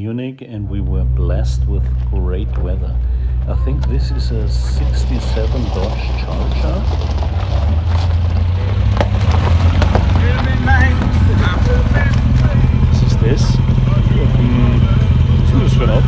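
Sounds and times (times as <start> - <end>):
background voices: 0.0 - 16.0
car engine idling: 0.6 - 16.0.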